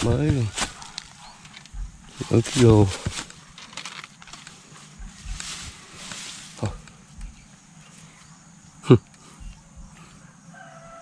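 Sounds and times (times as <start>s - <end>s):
soft rustle: 0.0s - 8.4s.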